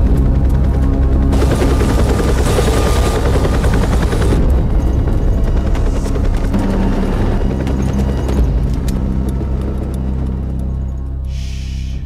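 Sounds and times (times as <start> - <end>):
helicopter rotors chopping: 0.0 - 11.2
soundtrack music: 0.0 - 12.0.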